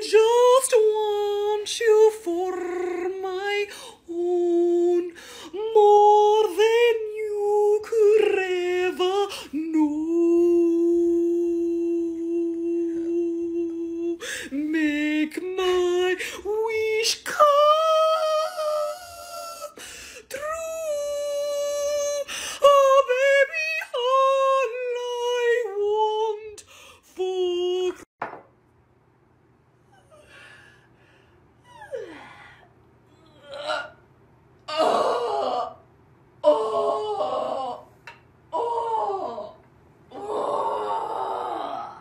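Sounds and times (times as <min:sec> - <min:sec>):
woman yawning loudly: 0:31.7 - 0:34.0, 0:38.6 - 0:42.0.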